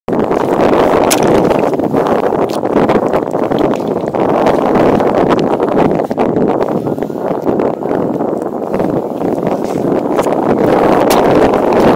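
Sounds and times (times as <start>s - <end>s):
wind noise on microphone: 0.1s - 11.9s.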